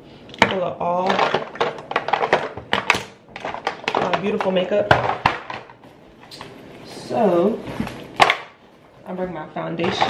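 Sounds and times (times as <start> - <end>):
items clattering in plastic container: 0.4 - 5.8, 9.8 - 10.0.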